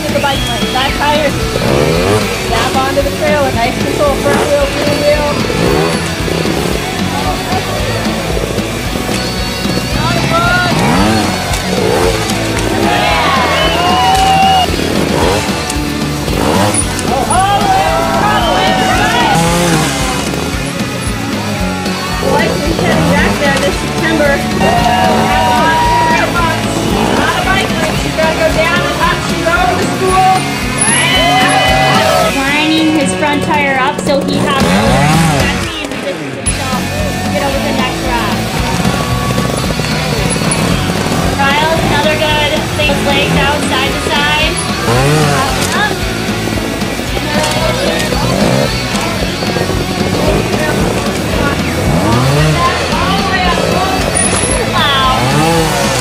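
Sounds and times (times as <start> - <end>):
background music: 0.0 - 56.0
faint voices: 0.0 - 56.0
motorcycle engines revving: 0.0 - 56.0.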